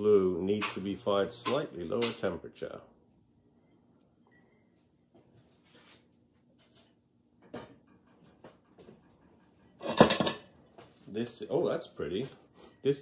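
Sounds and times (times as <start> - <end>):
ceramic mugs clinking: 9.8 - 10.5.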